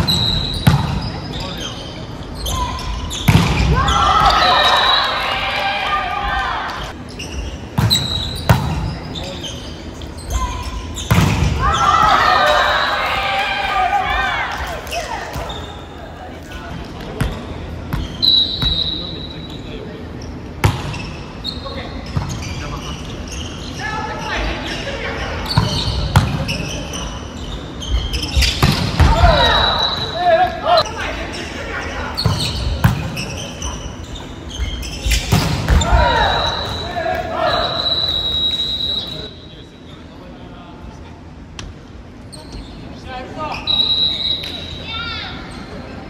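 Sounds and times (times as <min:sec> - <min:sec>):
players calling out: 0:02.4 - 0:07.1, 0:07.9 - 0:16.6, 0:34.9 - 0:39.4
volleyball thumps: 0:03.2 - 0:04.4, 0:11.1 - 0:12.6, 0:35.1 - 0:36.8.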